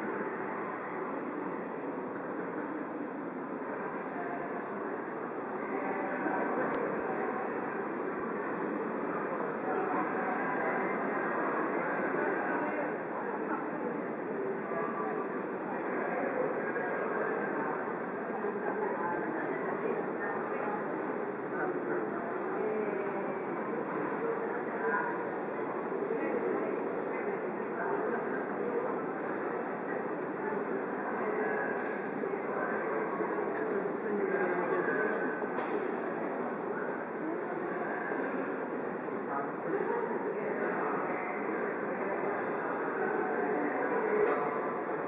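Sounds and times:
murmur of many voices: 0.0 - 45.0.

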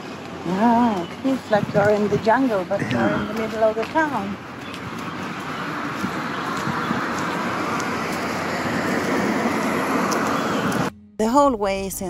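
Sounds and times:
road traffic noise: 0.0 - 10.9.

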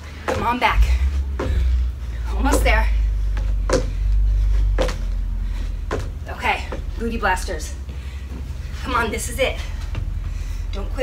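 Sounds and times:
steady low rumble: 0.0 - 11.0
feet thudding on wooden deck: 0.1 - 9.0.

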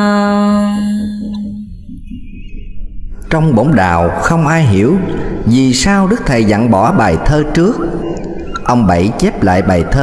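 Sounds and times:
person chanting a poem: 0.0 - 1.8.

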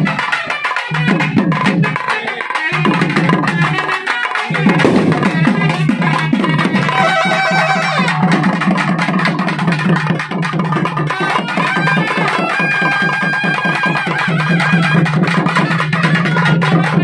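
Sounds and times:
loud fast drumming: 0.0 - 17.0
held melody line: 2.7 - 8.8.

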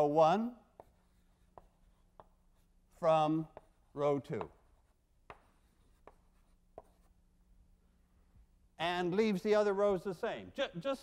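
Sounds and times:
faint steady hum: 0.0 - 11.0
chalk tapping blackboard: 0.5 - 7.2.

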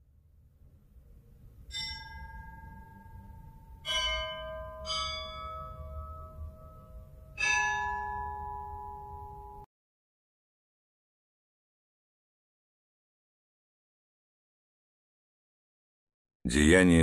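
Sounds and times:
church bells ringing: 1.7 - 9.7.

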